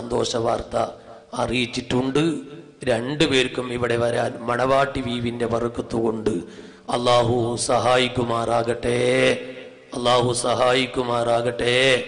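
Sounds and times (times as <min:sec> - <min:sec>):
man preaching sing-song: 0:00.0 - 0:12.0.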